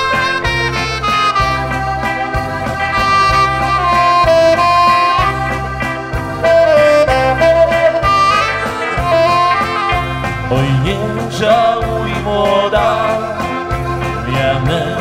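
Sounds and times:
live band playing instrumental: 0:00.0 - 0:15.0.

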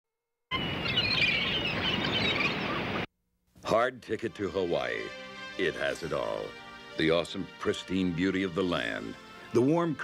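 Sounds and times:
birds chirping and twittering: 0:00.5 - 0:03.1.

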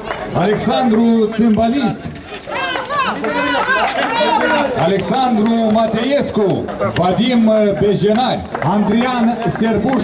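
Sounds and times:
background chatter: 0:00.0 - 0:10.0
people talking and calling out: 0:00.0 - 0:10.0.

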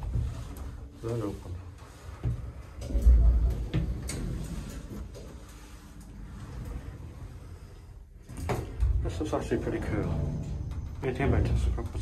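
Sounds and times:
steady lift rumble: 0:00.0 - 0:12.0.

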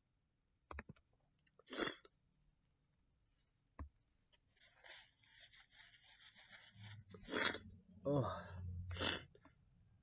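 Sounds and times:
paper rustling: 0:04.4 - 0:07.0.

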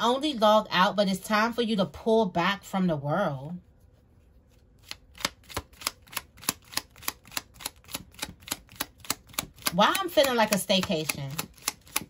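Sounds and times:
cards being shuffled: 0:04.2 - 0:12.0.

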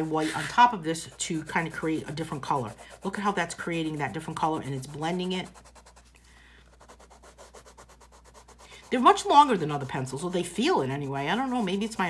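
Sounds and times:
colored pencil scratching paper: 0:00.0 - 0:12.0.

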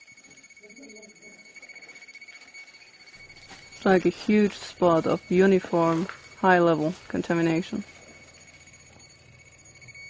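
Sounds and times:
high-pitched detector alarm tone: 0:00.0 - 0:10.0.

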